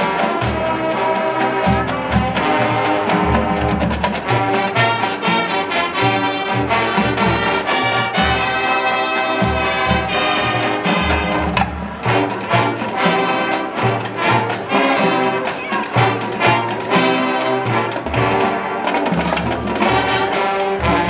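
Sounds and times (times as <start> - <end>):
brass chords: 0.0 - 21.0.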